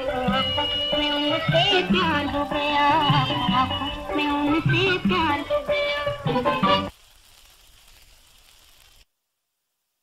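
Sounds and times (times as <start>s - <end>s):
recording hiss and hum: 0.0s - 10.0s.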